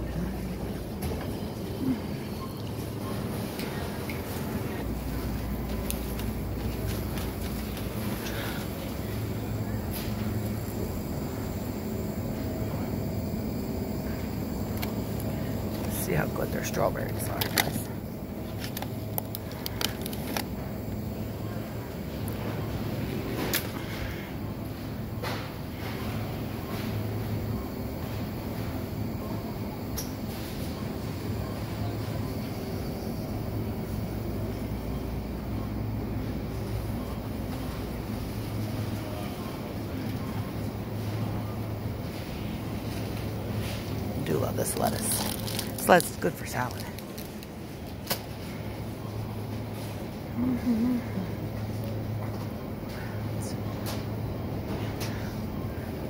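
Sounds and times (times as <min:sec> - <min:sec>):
low hum of supermarket: 0:00.0 - 0:56.0.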